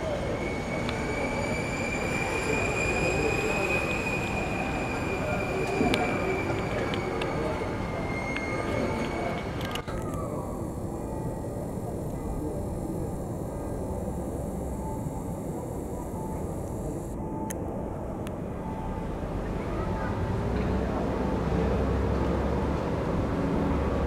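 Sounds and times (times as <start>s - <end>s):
low rumble of passing vehicles: 5.4s - 24.0s.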